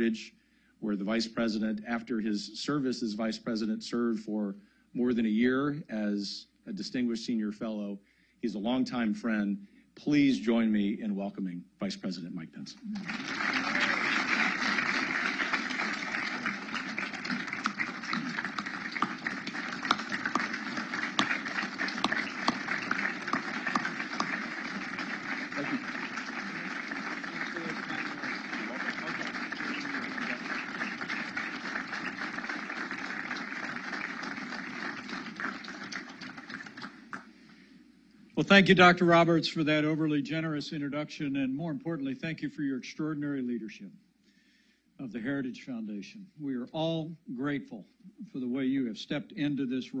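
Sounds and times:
crowd voices: 12.9s - 35.2s
audience applauding: 13.0s - 37.3s.

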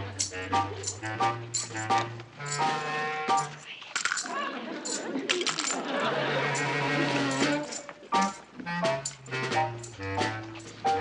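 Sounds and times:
spurs jingling: 0.0s - 5.9s, 7.2s - 10.9s
walking footsteps: 6.6s - 11.0s.

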